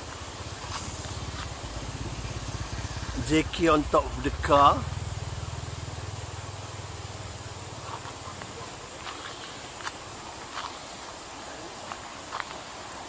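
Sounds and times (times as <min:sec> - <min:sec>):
vehicle engine humming: 0:00.0 - 0:09.8
outdoor hiss: 0:00.0 - 0:13.0.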